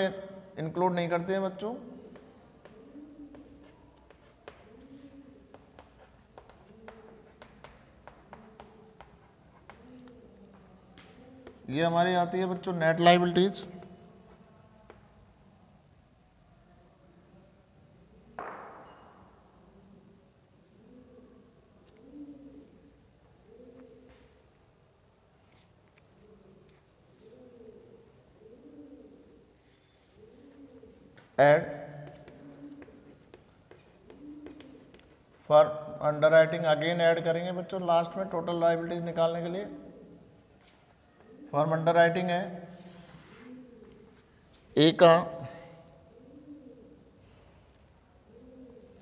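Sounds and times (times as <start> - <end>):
pigeon cooing: 0.0 - 15.8, 18.0 - 49.0.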